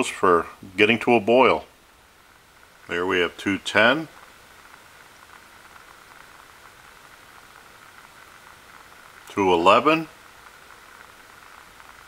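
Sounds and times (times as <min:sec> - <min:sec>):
stove hiss: 0:00.0 - 0:12.0.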